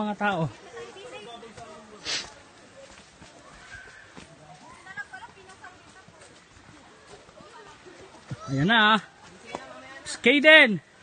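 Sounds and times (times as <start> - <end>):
faint distant voices: 0.0 - 10.2.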